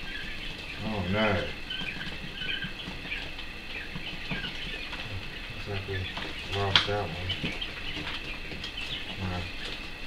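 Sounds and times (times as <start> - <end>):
quail chicks peeping: 0.0 - 10.0.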